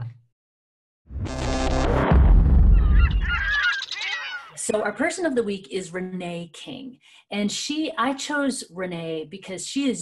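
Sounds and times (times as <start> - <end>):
overlapping bird calls: 2.8 - 4.7.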